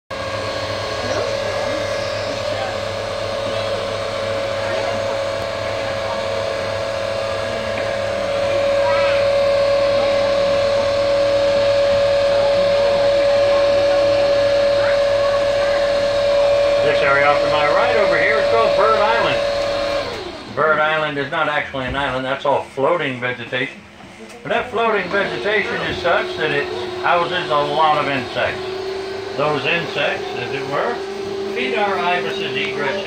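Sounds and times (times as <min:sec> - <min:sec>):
boat motor whining: 0:00.1 - 0:33.0
passengers chatting: 0:00.2 - 0:33.0.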